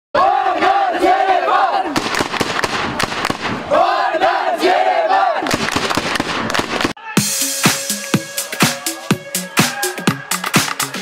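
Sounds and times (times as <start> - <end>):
football supporters chanting: 0.1 - 2.2, 3.0 - 5.8
fast sharp beats: 5.6 - 11.0.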